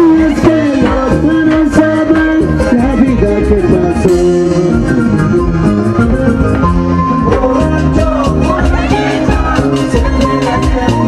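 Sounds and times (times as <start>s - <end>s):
live band instrumental music: 0.0s - 11.0s.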